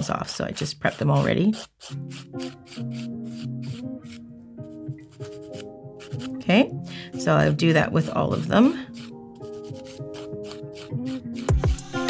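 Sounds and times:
nail file rubbing fingernail: 0.6 - 6.4, 7.3 - 12.0.

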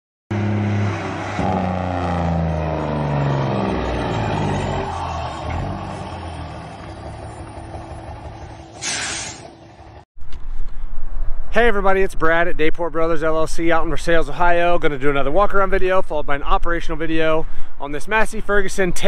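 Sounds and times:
large vehicle engine slowing: 0.3 - 11.4
air brake hiss: 8.8 - 9.5.

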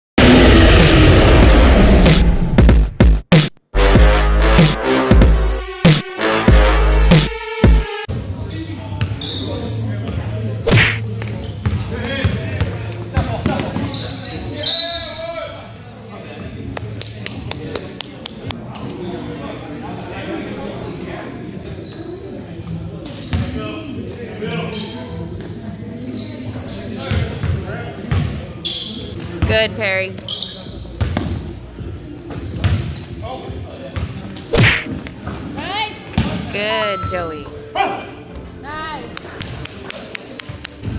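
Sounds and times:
players' voices echoing: 26.9 - 30.3
basketball bouncing on gym floor: 31.0 - 31.4.

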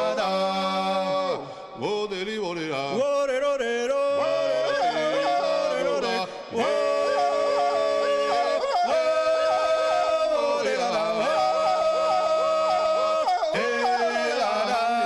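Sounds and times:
men singing in close harmony: 0.0 - 15.0.

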